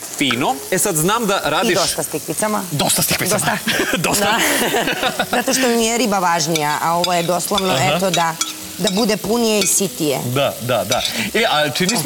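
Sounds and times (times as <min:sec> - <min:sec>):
vegetables sizzling in pan: 0:00.0 - 0:12.0.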